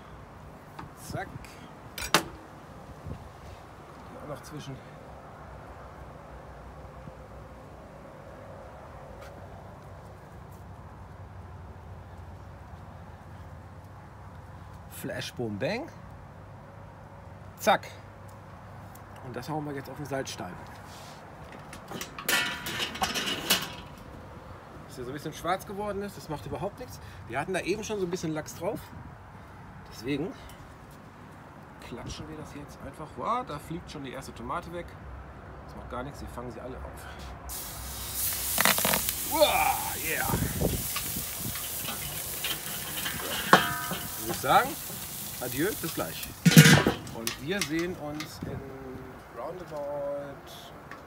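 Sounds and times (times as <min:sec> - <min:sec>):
metal grill lid scraping and rattling: 0:21.6 - 0:24.0, 0:40.8 - 0:48.4.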